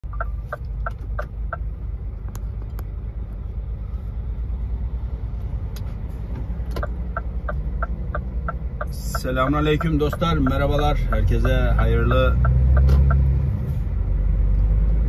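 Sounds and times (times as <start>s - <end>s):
diesel truck engine idling: 0.0s - 15.0s
truck passing by: 0.0s - 15.0s.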